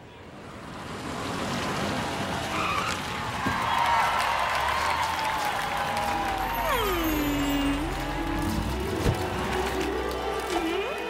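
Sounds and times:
cartoon car approaching: 0:00.4 - 0:10.1.

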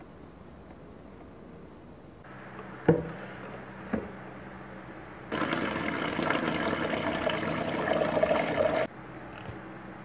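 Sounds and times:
faucet water running into basin: 0:05.3 - 0:08.9.

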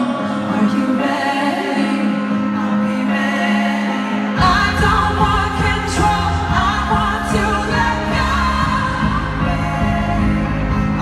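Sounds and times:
live pop music over sound system: 0:00.0 - 0:11.0.

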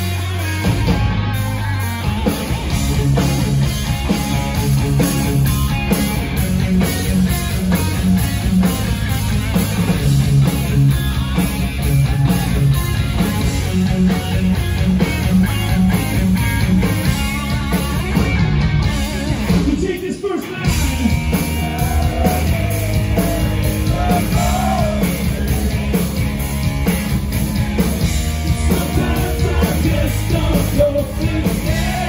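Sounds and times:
hard rock band playing: 0:00.0 - 0:32.0.

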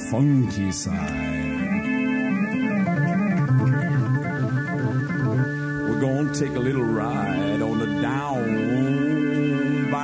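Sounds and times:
bass line: 0:00.0 - 0:10.0
electric organ chords: 0:00.0 - 0:10.0.

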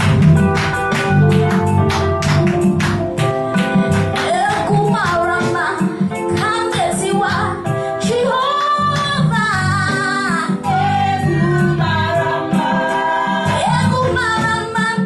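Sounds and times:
electronic keyboard chords: 0:00.0 - 0:15.0
woman singing gospel song: 0:03.8 - 0:15.0.

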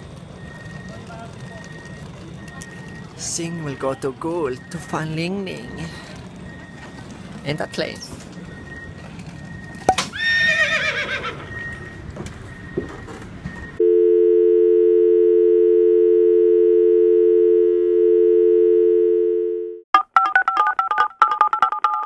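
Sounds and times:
telephone dial tone: 0:13.8 - 0:19.8.

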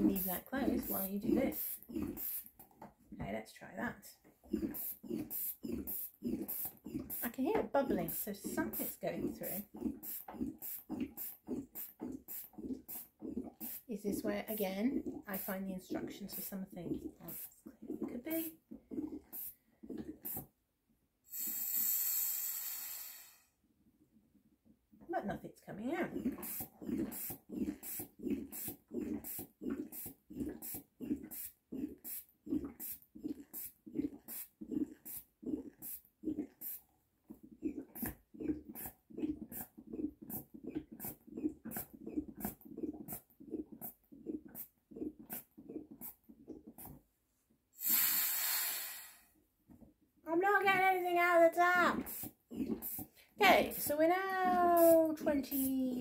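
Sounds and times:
hand-bulb air pump squeezing: 0:00.0 - 0:03.0, 0:04.3 - 0:20.6, 0:21.3 - 0:23.4, 0:26.0 - 0:47.0, 0:47.8 - 0:49.8, 0:51.7 - 0:56.0
air hiss: 0:21.3 - 0:23.5, 0:47.8 - 0:49.3.

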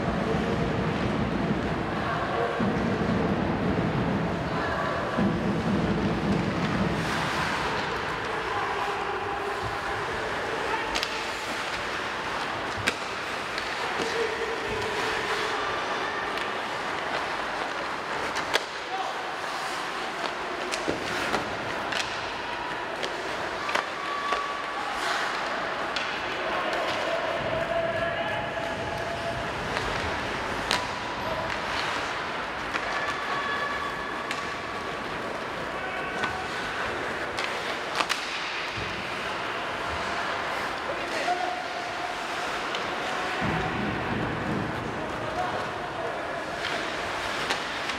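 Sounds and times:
hockey sticks clacking on puck: 0:02.4 - 0:47.9
puck hitting boards: 0:10.8 - 0:14.2, 0:20.2 - 0:22.4, 0:29.5 - 0:34.8, 0:36.1 - 0:39.2.

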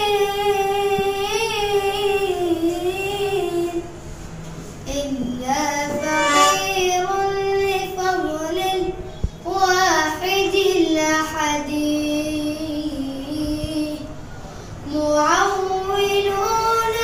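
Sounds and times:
boy singing solo: 0:04.9 - 0:10.0.

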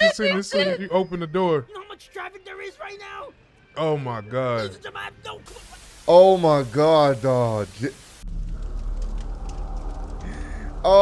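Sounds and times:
static hiss: 0:05.4 - 0:09.4
low outdoor rumble: 0:08.2 - 0:11.0.

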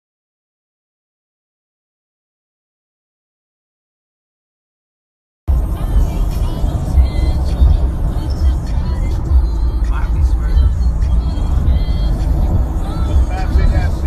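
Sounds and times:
music playing in car: 0:05.5 - 0:14.0
road and wind rumble: 0:05.5 - 0:14.0
voices talking: 0:05.8 - 0:14.0.

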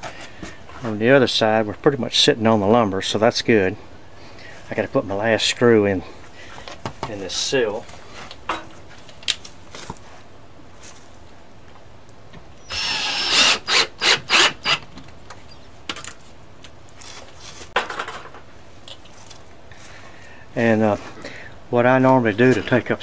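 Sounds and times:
cordless drill driving screw: 0:12.6 - 0:14.9.

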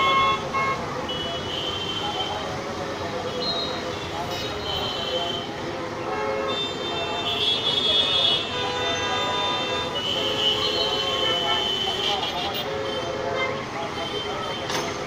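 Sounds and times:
diesel excavator engines: 0:00.0 - 0:15.0.

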